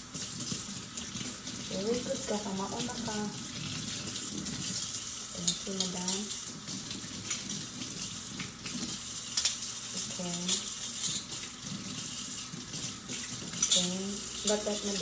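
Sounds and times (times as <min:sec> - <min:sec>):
faucet running into metal sink: 0:00.0 - 0:15.0
cutlery clinking: 0:10.3 - 0:11.5, 0:13.2 - 0:15.0.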